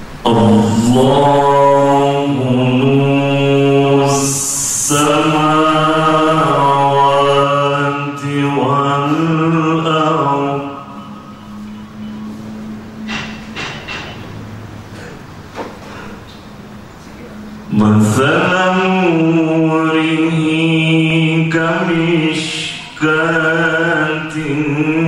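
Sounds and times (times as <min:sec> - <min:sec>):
faint steady hum: 0:00.0 - 0:25.0
man reciting melodically: 0:00.1 - 0:11.6, 0:17.6 - 0:25.0.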